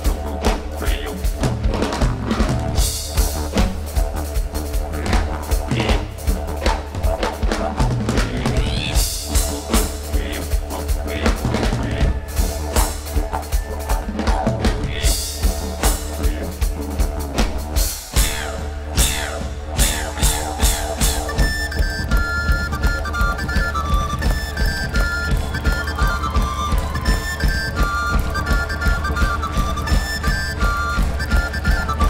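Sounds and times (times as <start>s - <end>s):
deep didgeridoo drone: 0.0s - 32.0s
rock drum kit beat: 0.0s - 32.0s.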